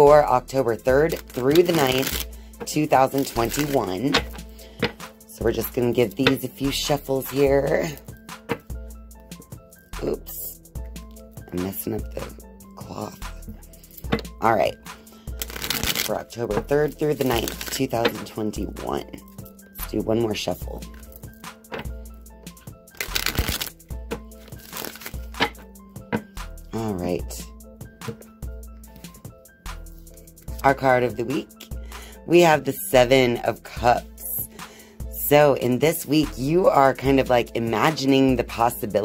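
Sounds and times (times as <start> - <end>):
soft background music: 0.0 - 39.0
cards being shuffled: 1.0 - 5.1, 15.4 - 18.3, 23.0 - 26.3.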